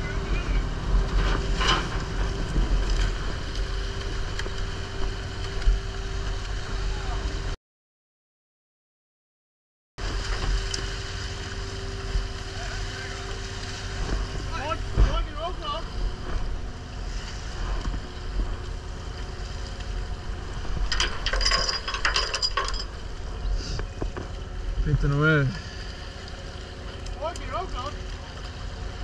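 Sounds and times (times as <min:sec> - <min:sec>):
boat deck machinery humming: 0:00.0 - 0:07.6, 0:10.0 - 0:29.0
rattling and clicking: 0:20.9 - 0:23.0.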